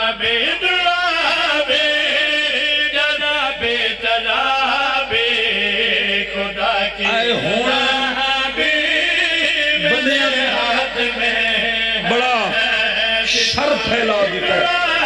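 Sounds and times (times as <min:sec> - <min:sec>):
men chanting over loudspeakers: 0:00.0 - 0:15.0.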